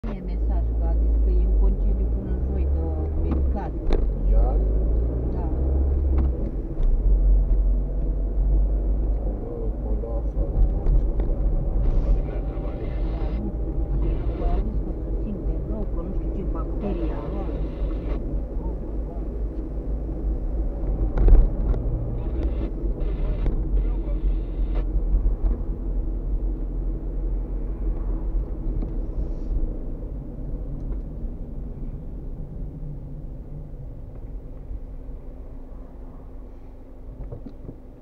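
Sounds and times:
car engine and road noise: 0.0 - 38.0.

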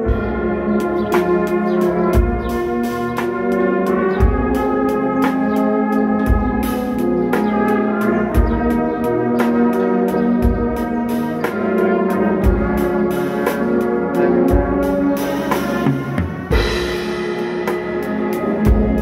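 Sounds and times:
brass band playing hymn chords: 0.0 - 19.0
bass drum beating: 0.1 - 3.4.

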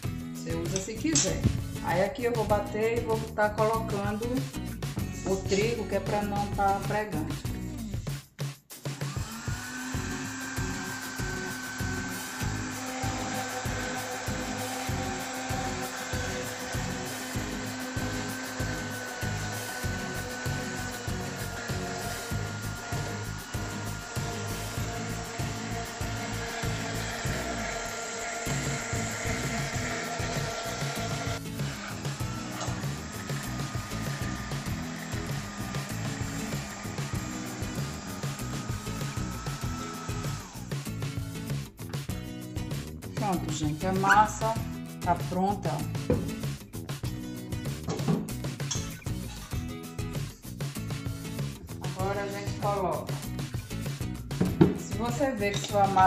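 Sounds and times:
background music with a beat: 0.0 - 27.2, 28.3 - 43.7, 44.4 - 56.0
blender motor running: 8.9 - 41.6, 51.3 - 56.0.

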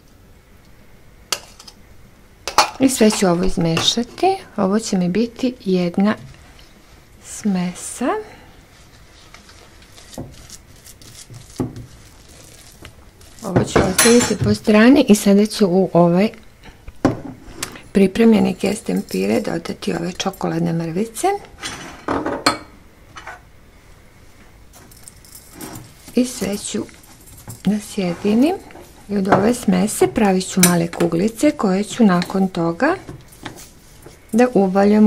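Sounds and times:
spatula stirring crumbs in bowl: 8.8 - 14.3.

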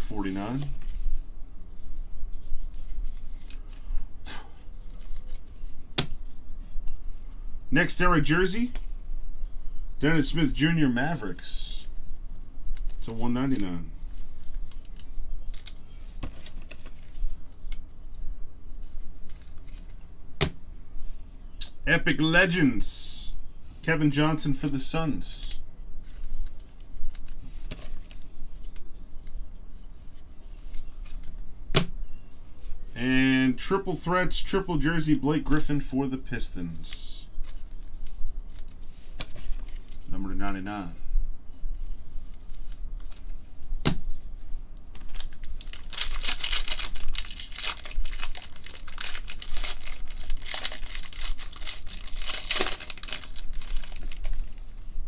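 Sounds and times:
rustling of cards in plastic: 4.7 - 6.5, 12.7 - 20.2, 36.8 - 40.7, 41.8 - 55.0
foil pack crinkling and tearing: 44.9 - 54.6.

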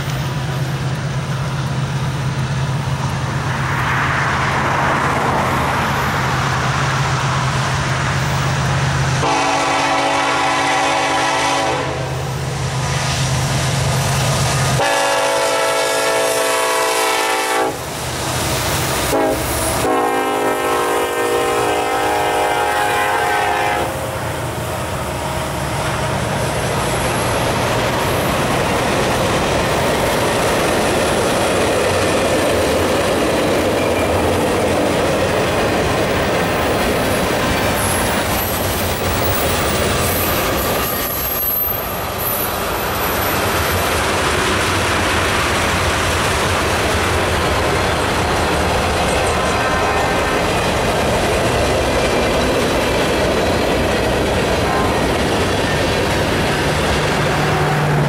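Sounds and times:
locomotive rumble: 0.0 - 58.0
train horn blasts: 9.2 - 12.3, 14.8 - 17.9, 19.0 - 24.2, 49.4 - 50.5, 54.6 - 55.2
freight car wheels clickety-clack: 26.6 - 41.6.

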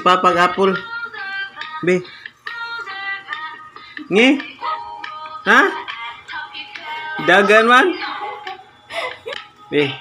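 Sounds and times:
children's music with singing: 0.0 - 10.0.

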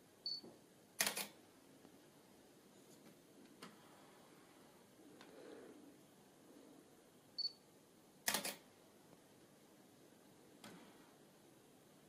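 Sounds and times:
camera focus beep: 7.4 - 7.6
camera shutter double click: 8.3 - 8.6.

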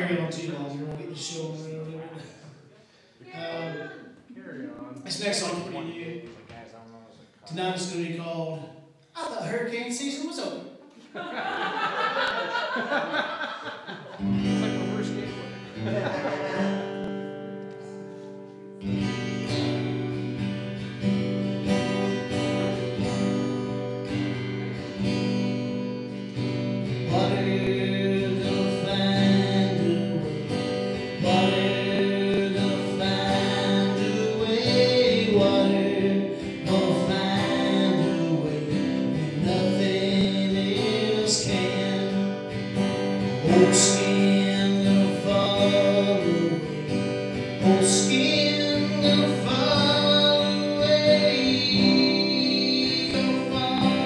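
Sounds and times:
man singing: 0.0 - 2.2, 15.8 - 17.2, 27.0 - 54.0
acoustic guitar strumming: 12.8 - 54.0.

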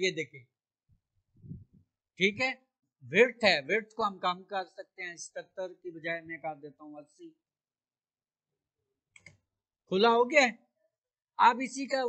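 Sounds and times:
man's voice: 2.2 - 7.4, 9.9 - 10.6, 11.4 - 12.0.

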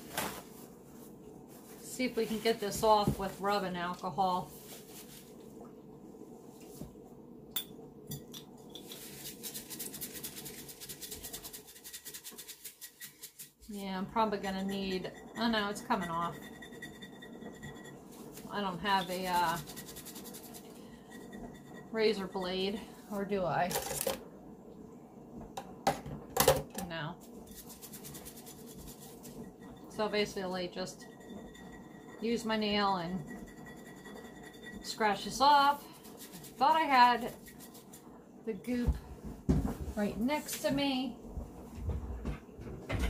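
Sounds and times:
paper towel scrubbing glass bottle: 27.5 - 29.4, 33.2 - 38.1.

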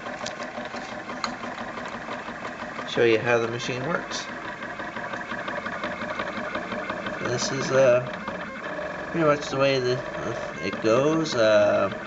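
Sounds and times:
faint rapid ticking: 0.0 - 12.0
stepper motors buzzing: 0.0 - 12.0.

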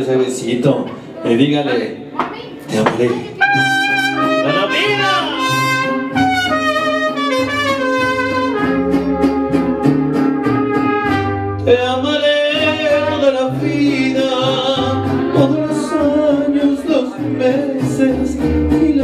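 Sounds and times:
mariachi band playing slow song: 0.0 - 19.0.

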